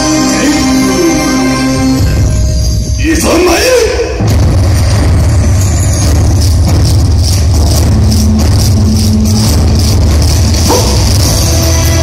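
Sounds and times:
loud bass-heavy dance music: 0:00.0 - 0:12.0
steady percussive beat: 0:00.0 - 0:12.0.

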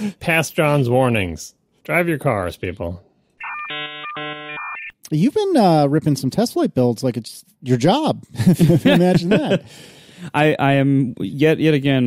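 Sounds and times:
buzzy electronic ringtone: 0:03.4 - 0:04.9.

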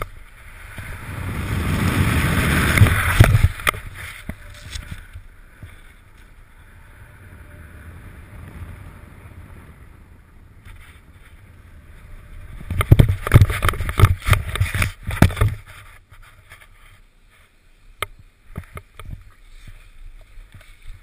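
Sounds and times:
loud wind buffeting: 0:00.4 - 0:05.7, 0:06.4 - 0:14.8.

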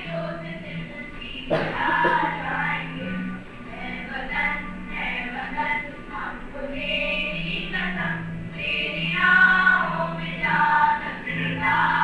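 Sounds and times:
children singing over loudspeakers: 0:04.0 - 0:12.0.

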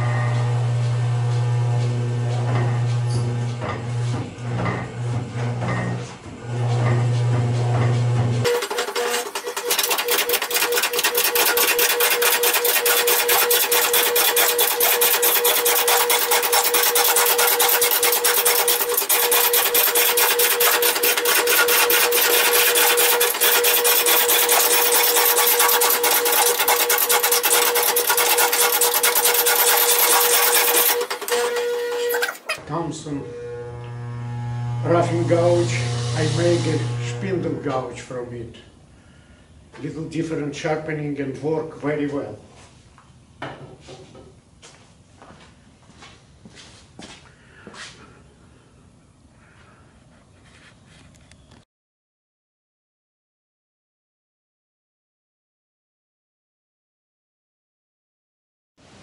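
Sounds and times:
lathe hum: 0:00.0 - 0:38.0
gouge rasping on spinning log: 0:06.7 - 0:32.6, 0:33.3 - 0:37.5.

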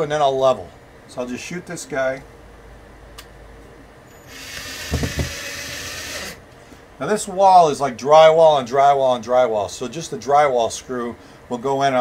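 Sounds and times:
cordless drill motor whir: 0:04.1 - 0:06.4.

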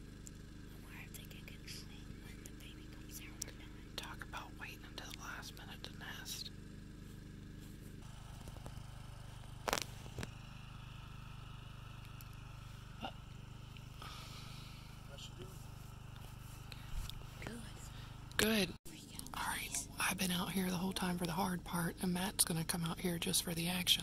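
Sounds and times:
low hum: 0:00.0 - 0:24.0
soft whispering: 0:00.7 - 0:06.5, 0:18.9 - 0:20.1.

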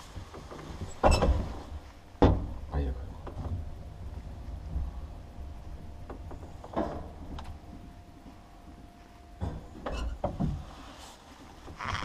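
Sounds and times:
elevator low rumble: 0:00.0 - 0:12.0
faint steady hum: 0:00.0 - 0:12.0.

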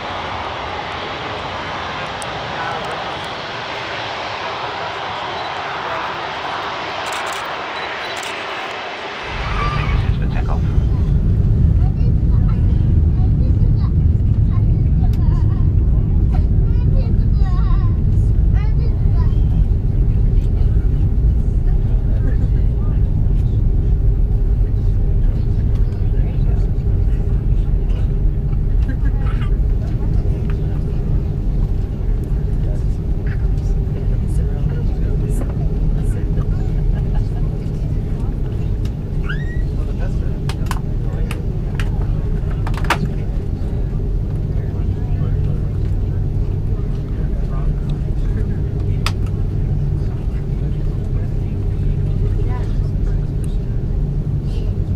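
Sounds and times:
aircraft engines rumbling: 0:00.0 - 0:54.9.

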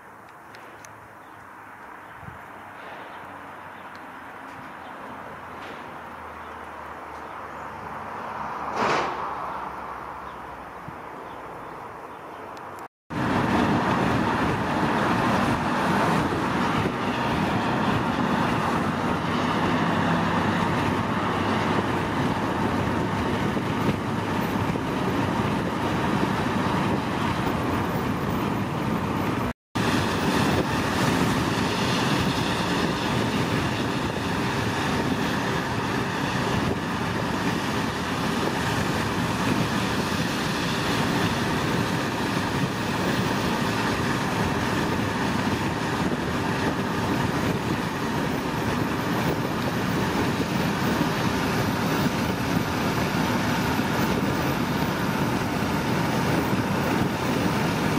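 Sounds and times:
vehicle engine and road rumble: 0:00.0 - 0:57.9.

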